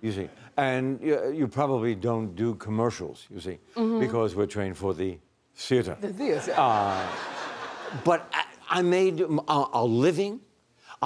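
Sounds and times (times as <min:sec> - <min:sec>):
man talking: 0:00.0 - 0:07.3, 0:07.9 - 0:11.0.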